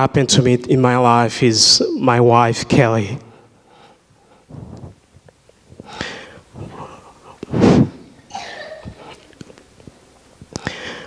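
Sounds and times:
man breathing into microphone: 0:03.4 - 0:05.0, 0:05.7 - 0:08.0, 0:10.6 - 0:11.0
sharp sniff: 0:03.4 - 0:05.0, 0:05.8 - 0:08.1.

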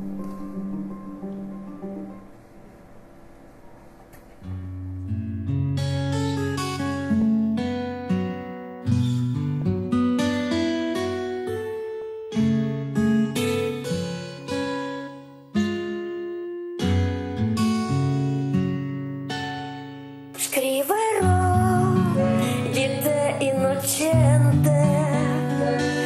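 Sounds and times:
plucked guitar notes: 0:00.0 - 0:02.8, 0:04.2 - 0:26.0
acoustic guitar music: 0:00.0 - 0:26.0.

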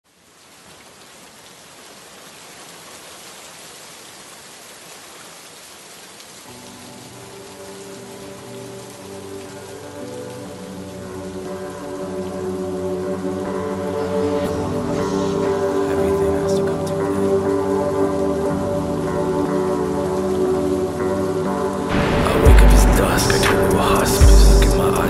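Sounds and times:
steady rain hiss: 0:00.0 - 0:25.0
sustained music chords: 0:06.5 - 0:25.0.

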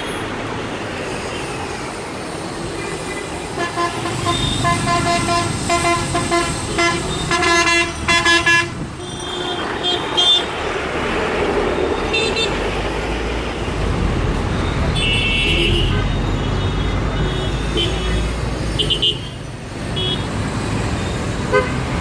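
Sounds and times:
bus and car engines rumbling: 0:00.0 - 0:22.0
vehicle horns honking: 0:03.5 - 0:10.6, 0:14.9 - 0:19.4, 0:20.0 - 0:20.3, 0:21.5 - 0:21.9.

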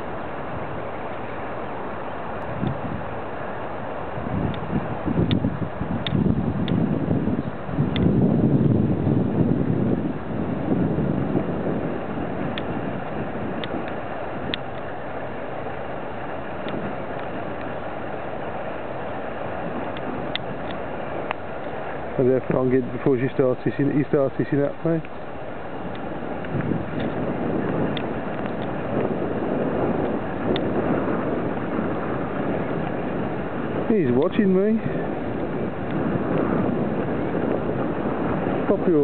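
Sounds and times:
steady outdoor rush: 0:00.0 - 0:39.0
wind buffeting microphone: 0:00.0 - 0:39.0.

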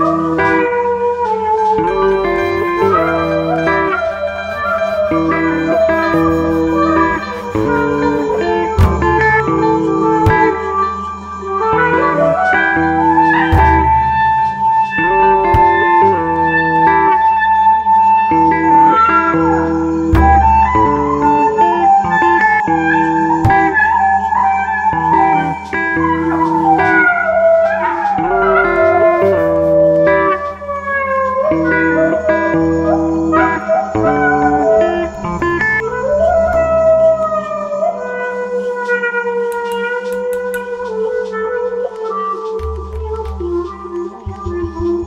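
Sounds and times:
plucked guitars: 0:00.0 - 0:38.5, 0:39.3 - 0:45.0
sliding melody: 0:01.6 - 0:16.9, 0:26.0 - 0:45.0
plucked double bass: 0:04.7 - 0:10.6, 0:13.5 - 0:16.3, 0:42.6 - 0:45.0.

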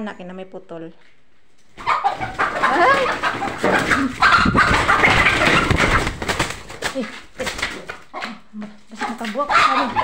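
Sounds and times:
wings flapping: 0:01.8 - 0:08.1
chicken squawking: 0:01.8 - 0:10.0.

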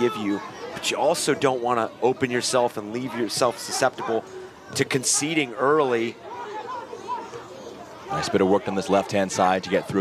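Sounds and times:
faint chatter of voices: 0:00.0 - 0:10.0.

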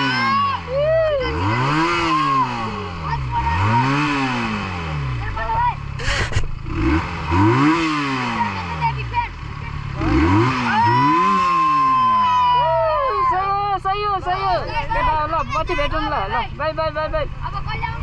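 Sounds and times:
children's excited voices: 0:00.0 - 0:04.4, 0:08.2 - 0:16.6
motorcycle engine revving: 0:00.0 - 0:15.0.

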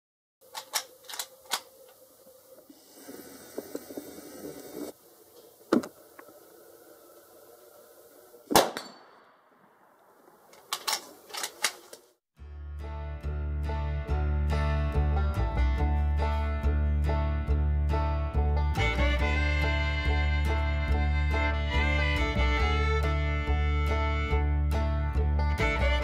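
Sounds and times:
rifle shots with ringing tail: 0:08.5 - 0:09.9.

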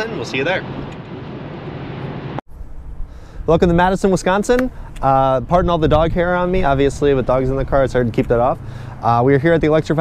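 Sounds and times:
road and tyre noise in car: 0:00.0 - 0:02.9
wind rumble on microphone: 0:00.0 - 0:10.0.

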